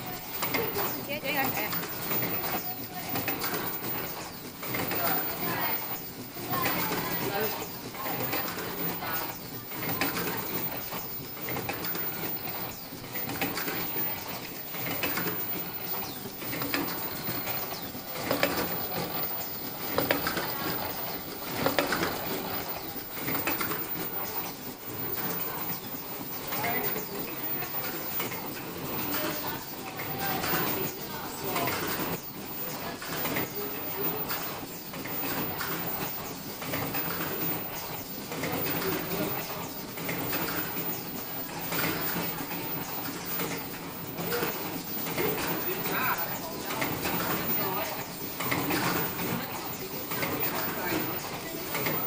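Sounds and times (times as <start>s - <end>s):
machinery mechanical clatter: 0.0s - 52.0s.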